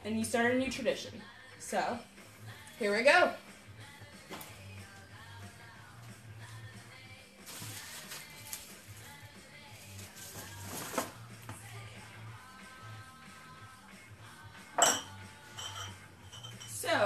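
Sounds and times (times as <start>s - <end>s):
background music: 0.0s - 17.0s
dishes clinking: 14.8s - 16.8s.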